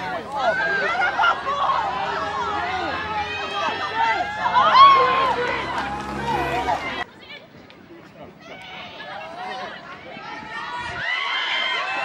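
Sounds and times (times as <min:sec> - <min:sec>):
people shouting and calling: 0:00.0 - 0:07.4, 0:08.2 - 0:12.0.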